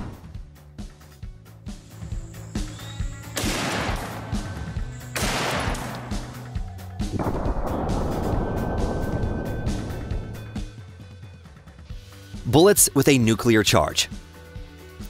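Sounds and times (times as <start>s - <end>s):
rifle shots with echo: 3.3s - 6.5s.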